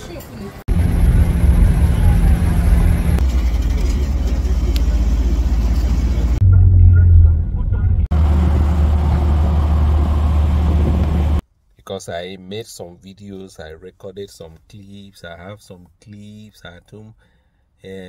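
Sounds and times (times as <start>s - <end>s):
vehicle and road rumble: 0.0s - 11.4s.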